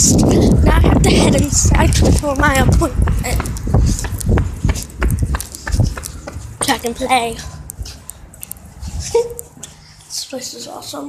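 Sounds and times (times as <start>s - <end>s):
microphone handling rumble: 0.0s - 7.0s
footsteps on concrete: 0.8s - 9.8s.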